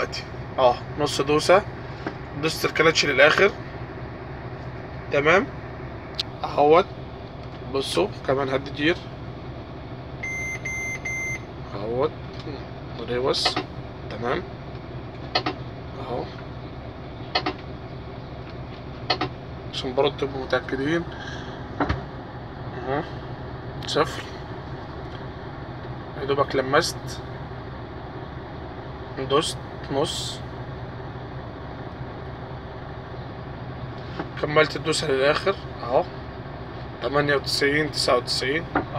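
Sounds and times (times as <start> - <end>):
diesel engine idling: 0.0 - 38.9
truck warning beeper: 10.2 - 11.5.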